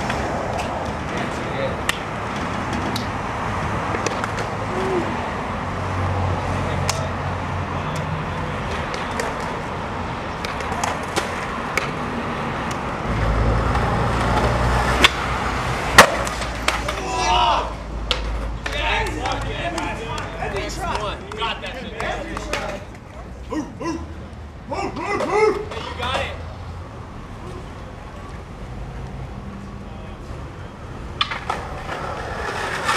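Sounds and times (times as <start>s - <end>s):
skateboard wheels rolling on concrete: 0.0s - 32.9s
skateboard snap: 1.8s - 2.1s, 3.9s - 4.6s, 6.8s - 7.1s, 7.9s - 9.6s, 10.3s - 12.0s, 13.8s - 15.3s, 15.9s - 17.3s, 18.0s - 23.1s, 31.2s - 32.9s
people's voices: 4.5s - 5.3s, 18.6s - 26.5s
skateboard cracking on ground: 10.3s - 12.0s, 15.9s - 17.3s, 31.2s - 32.9s.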